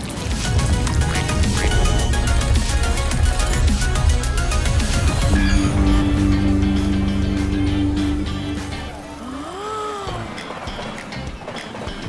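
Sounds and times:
background music: 0:00.0 - 0:12.0
low two-note drone: 0:00.6 - 0:09.3.

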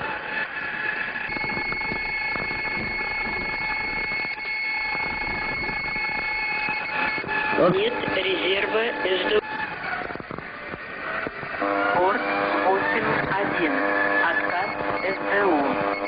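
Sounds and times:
high-pitched warning tone: 0:00.5 - 0:16.0
intercom hiss: 0:01.3 - 0:09.7, 0:11.0 - 0:16.0.

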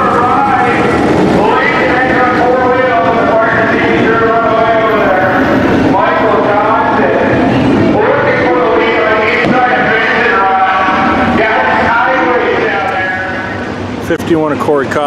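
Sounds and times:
race car engines droning: 0:00.0 - 0:15.0.

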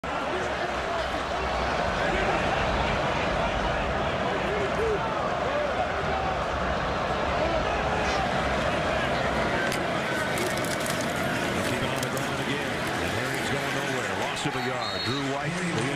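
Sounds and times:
stadium crowd roar: 0:00.0 - 0:15.9.

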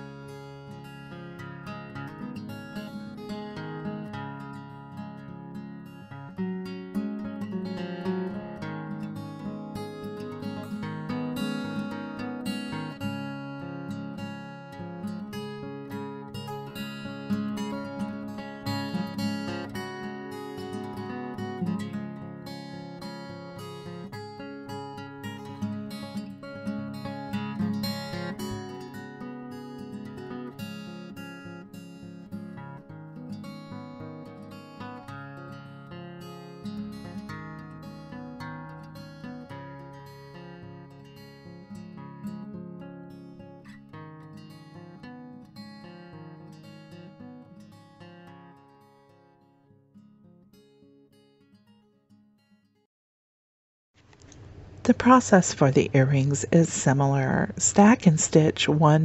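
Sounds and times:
acoustic guitar strumming: 0:00.0 - 0:52.6, 0:54.5 - 0:59.0.

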